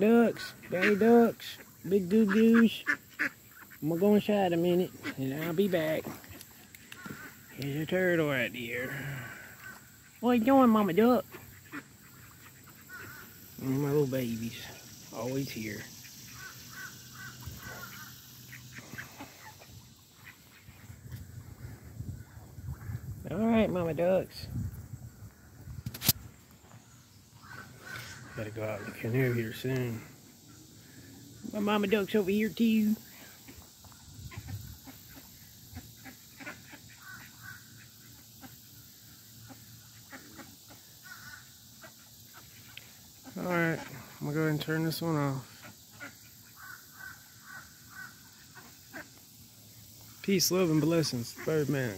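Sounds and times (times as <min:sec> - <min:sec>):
geese and ducks calling: 0:00.0 - 0:24.3, 0:27.2 - 0:51.9.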